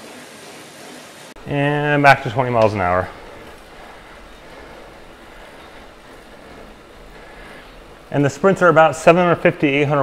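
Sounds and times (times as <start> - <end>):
bike drivetrain whirring on trainer: 0.0 - 10.0.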